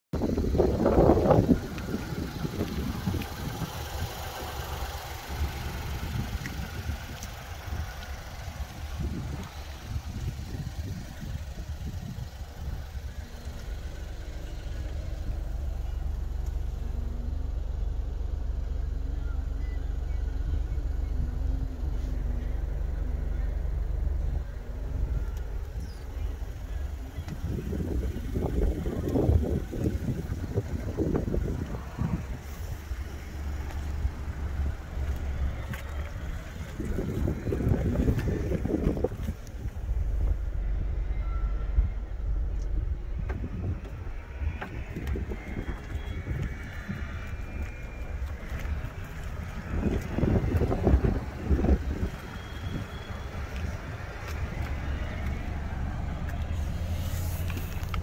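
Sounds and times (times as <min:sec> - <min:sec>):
wind buffeting microphone: 0:00.1 - 0:18.4, 0:19.6 - 0:58.0.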